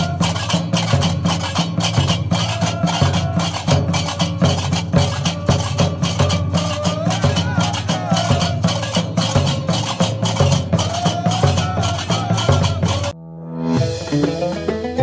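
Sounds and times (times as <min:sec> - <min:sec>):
large drums: 0:00.0 - 0:13.2
voices singing: 0:00.0 - 0:13.2.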